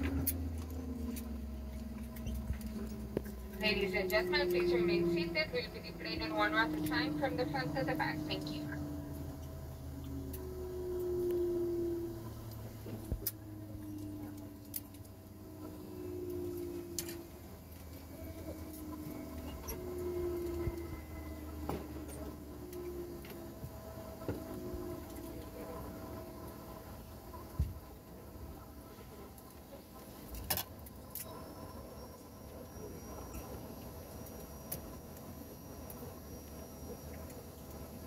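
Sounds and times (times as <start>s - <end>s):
clicks and knocks of passengers moving: 0.0s - 10.6s, 12.5s - 25.9s
airliner cabin hum: 0.0s - 30.3s.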